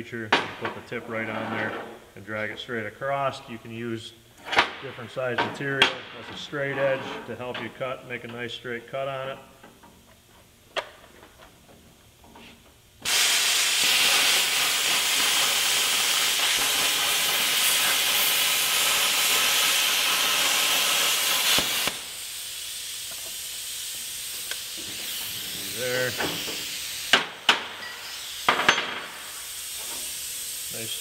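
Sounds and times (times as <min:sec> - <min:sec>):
quieter hiss: 0:00.0 - 0:31.0
plasma cutter arc hissing: 0:13.0 - 0:31.0.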